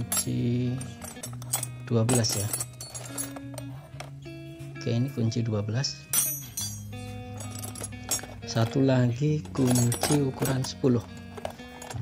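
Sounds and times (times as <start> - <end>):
metal tools clinking in plastic box: 0.0 - 4.2, 6.1 - 12.0
background music with held notes: 0.0 - 12.0.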